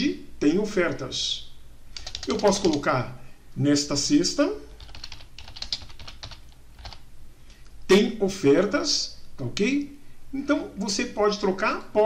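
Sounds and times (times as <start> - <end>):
keyboard typing: 2.0 - 2.8, 4.8 - 7.0.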